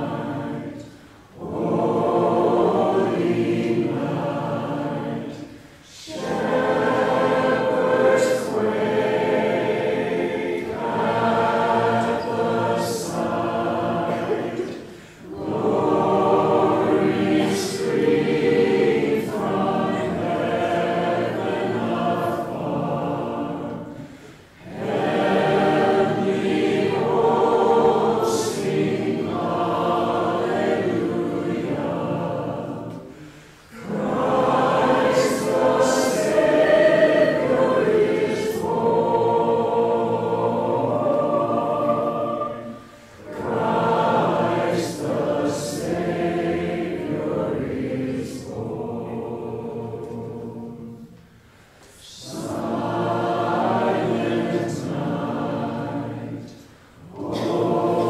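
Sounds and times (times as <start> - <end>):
group singing a hymn: 0.0 - 58.0.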